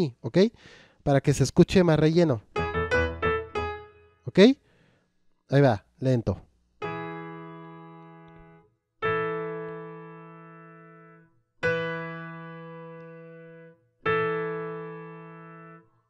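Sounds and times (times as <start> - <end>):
piano chords: 2.4 - 4.4, 6.8 - 16.0.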